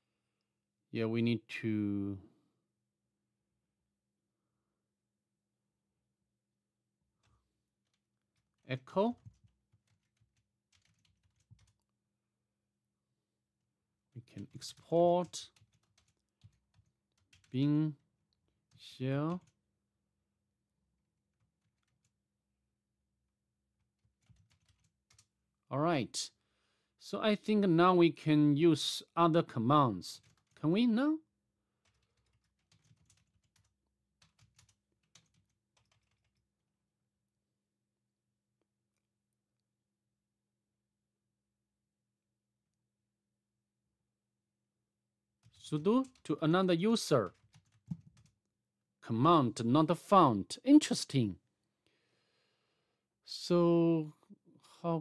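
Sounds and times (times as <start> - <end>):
keyboard typing: 7.2 - 11.9, 14.3 - 17.6, 18.5 - 19.6, 21.4 - 22.2, 23.8 - 25.3, 30.2 - 30.6, 31.8 - 36.4, 45.4 - 46.4, 47.1 - 48.5
computer keyboard taps: 47.4 - 48.4.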